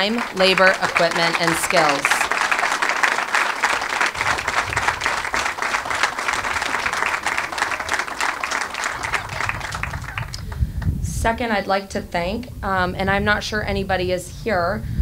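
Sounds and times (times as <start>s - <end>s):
audience applauding: 0.0s - 10.6s.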